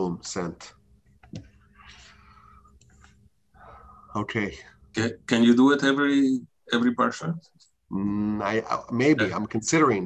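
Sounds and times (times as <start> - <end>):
soft breathy noise: 1.6 - 4.9
faint clicks: 2.7 - 3.2.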